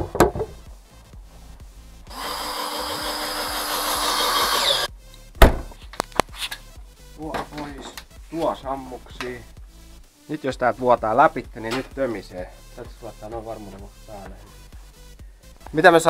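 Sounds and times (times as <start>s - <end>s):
cordless drill whirring: 2.1s - 4.9s
sharp knock: 5.4s - 5.8s.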